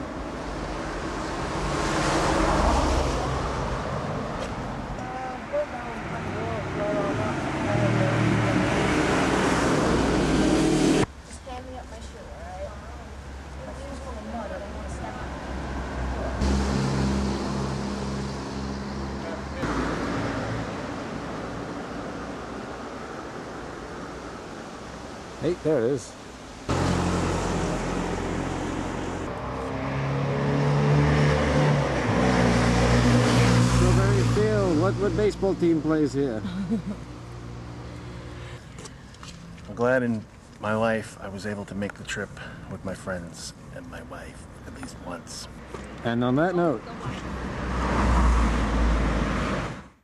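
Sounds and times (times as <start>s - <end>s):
vehicle engine running: 16.4s - 19.6s.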